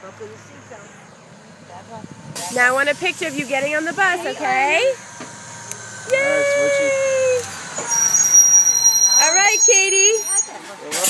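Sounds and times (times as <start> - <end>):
high-pitched brake squeal: 5.8 - 11.0.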